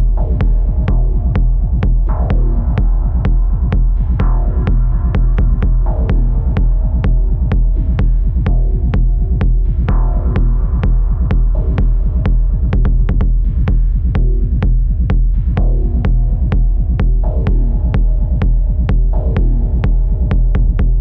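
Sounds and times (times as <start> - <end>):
deep bass drone: 0.0 - 21.0
ticking techno beat: 0.0 - 21.0.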